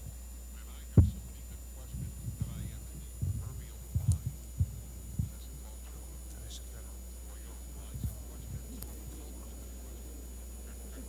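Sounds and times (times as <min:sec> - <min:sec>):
faint murmur of voices: 0:00.0 - 0:11.0
steady low hum: 0:00.0 - 0:11.0
low thumps and bumps: 0:01.0 - 0:05.7, 0:07.8 - 0:09.3.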